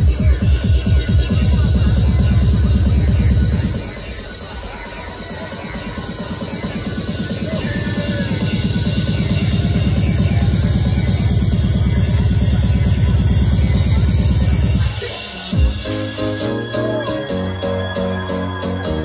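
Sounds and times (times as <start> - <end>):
electronic dance music: 0.0 - 19.0.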